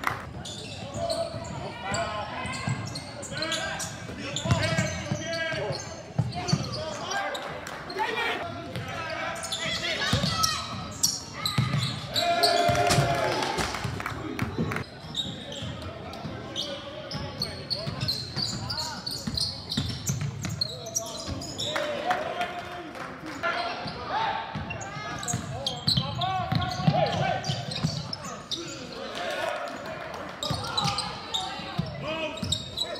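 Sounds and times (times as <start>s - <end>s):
shouts and chatter: 6.8s - 13.8s.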